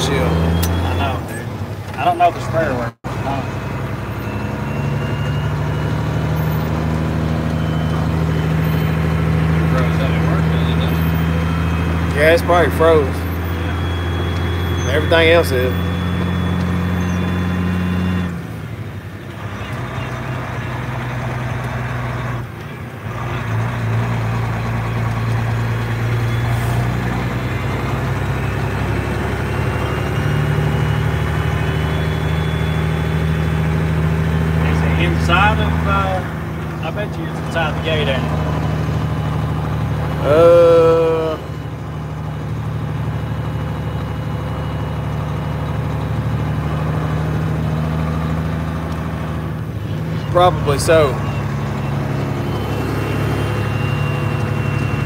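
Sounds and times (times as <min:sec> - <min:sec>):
voices: 0:00.0 - 0:46.9, 0:49.6 - 0:55.0
diesel truck engine droning: 0:00.0 - 0:55.0.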